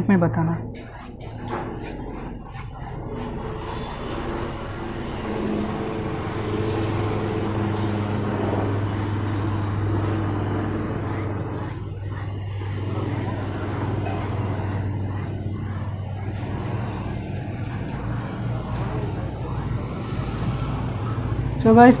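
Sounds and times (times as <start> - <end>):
low motor drone: 0.0 - 22.0.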